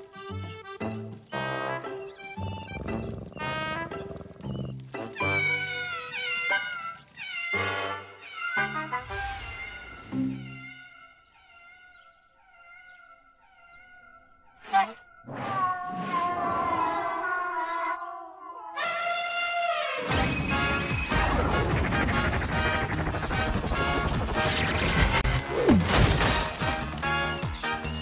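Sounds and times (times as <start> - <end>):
background music: 0.0 - 10.6, 19.3 - 28.0
cartoon cat vocal noises: 9.4 - 19.1.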